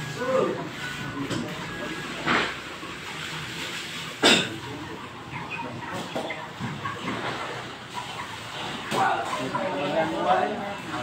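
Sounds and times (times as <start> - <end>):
chickens clucking: 0.0 - 11.0
noisy shed background: 0.0 - 11.0.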